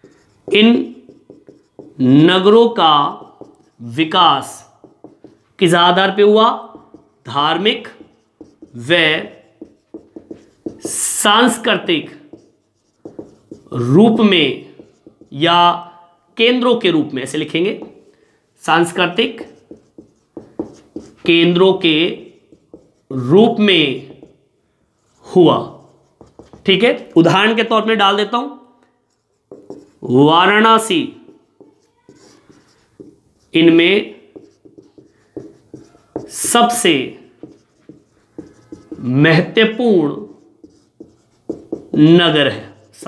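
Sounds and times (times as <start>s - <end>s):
marker pen writing on whiteboard: 0.0s - 28.3s, 28.9s - 43.0s
man talking: 13.7s - 15.8s, 23.1s - 24.2s, 39.0s - 40.4s, 41.9s - 43.0s.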